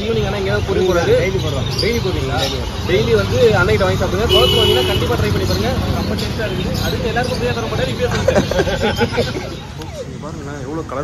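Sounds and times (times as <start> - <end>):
men talking: 0.0 - 11.0
road traffic rumble: 0.0 - 11.0.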